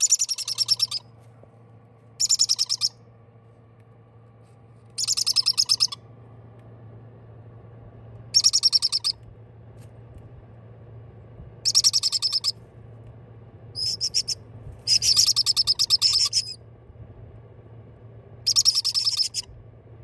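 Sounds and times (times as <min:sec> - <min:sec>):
parrot chicks chirping: 0:00.0 - 0:01.0, 0:02.2 - 0:03.0, 0:05.0 - 0:06.0, 0:08.3 - 0:09.2, 0:11.6 - 0:12.5, 0:13.8 - 0:16.6, 0:18.5 - 0:19.5.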